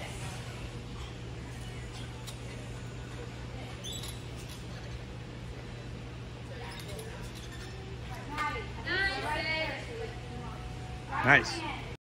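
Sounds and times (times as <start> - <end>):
ventilation hum: 0.0 - 12.0
faint squeaks: 0.1 - 10.7.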